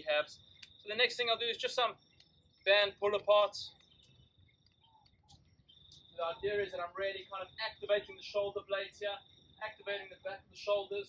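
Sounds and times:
cricket trilling: 0.0s - 11.0s.

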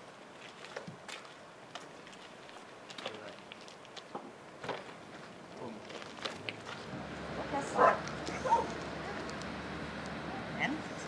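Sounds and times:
dog barking: 7.7s - 8.8s.

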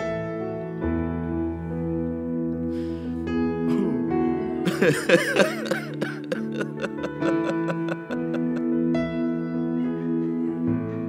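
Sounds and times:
keyboard playing soft chords: 3.3s - 9.5s
loud burst of person's voice: 4.7s - 8.6s.

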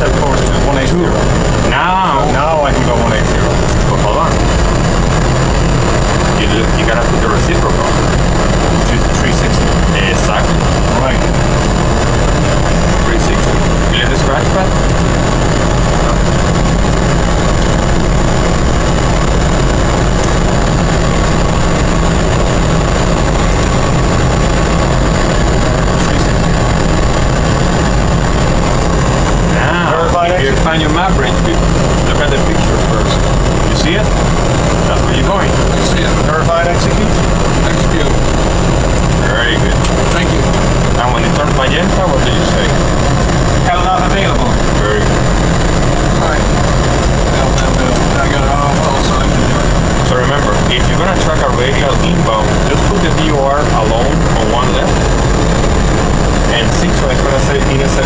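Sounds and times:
low cockpit rumble: 0.0s - 58.0s
low voices: 0.0s - 58.0s
thin high whine: 0.0s - 58.0s.

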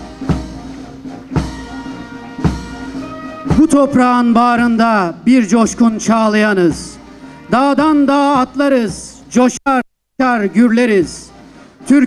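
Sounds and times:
military march music: 0.0s - 9.6s, 10.2s - 12.0s.

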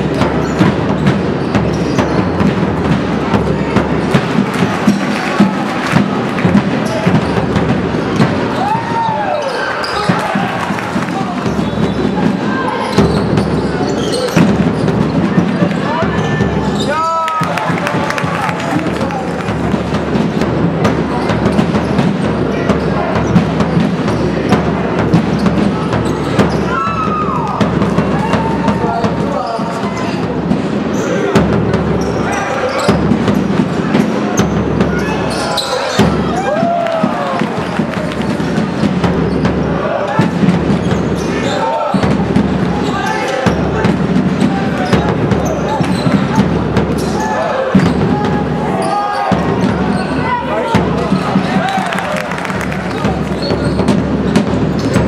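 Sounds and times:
basketball bouncing on court: 0.0s - 8.8s, 9.4s - 55.0s
sneakers squeaking: 0.0s - 20.2s, 20.8s - 55.0s
voices: 0.0s - 55.0s
shoe squeaks: 0.4s - 2.4s, 9.4s - 10.3s, 11.5s - 17.2s, 29.3s - 30.3s, 32.0s - 33.4s, 34.4s - 36.1s, 40.8s - 42.1s, 44.4s - 48.0s, 48.7s - 50.4s, 52.9s - 55.0s.

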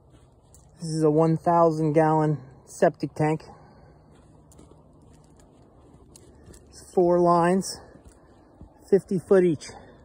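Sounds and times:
faint low hum: 0.0s - 10.0s
faint ticks and rustles: 0.0s - 10.0s.

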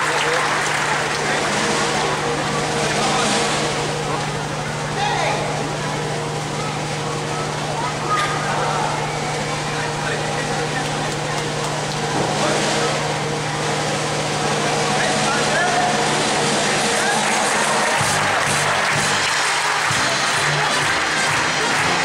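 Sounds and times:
audience murmur: 0.0s - 22.0s
steady low hum: 0.0s - 22.0s.

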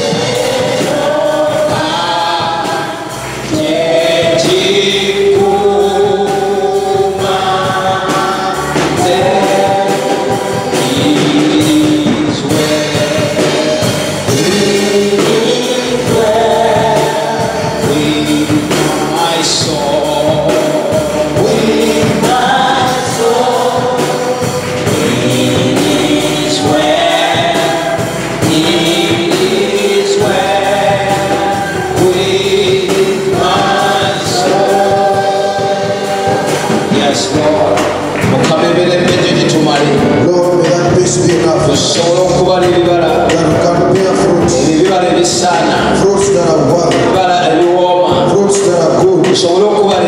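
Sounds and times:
band accompaniment: 0.0s - 50.0s
choir singing along: 0.0s - 50.0s
man singing into a microphone: 0.0s - 50.0s.

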